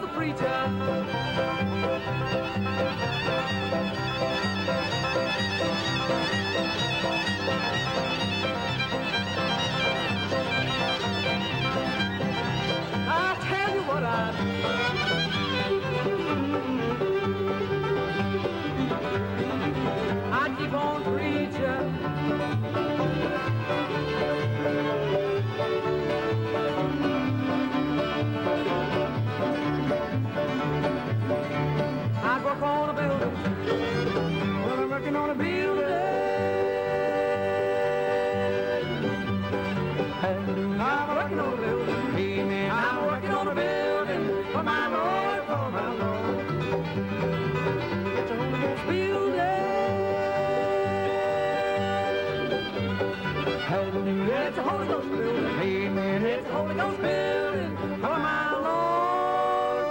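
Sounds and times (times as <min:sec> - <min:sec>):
bluegrass band playing: 0:00.0 - 0:59.9
fiddle melody: 0:00.0 - 0:59.9.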